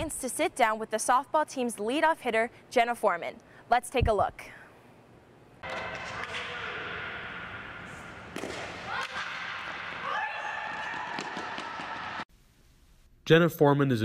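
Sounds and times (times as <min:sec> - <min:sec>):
steady background hum: 0:00.0 - 0:13.4.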